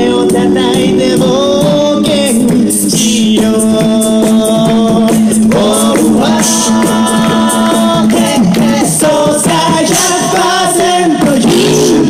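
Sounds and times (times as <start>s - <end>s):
a cappella group singing: 0.0s - 12.0s
vocal percussion ticks: 0.0s - 12.0s.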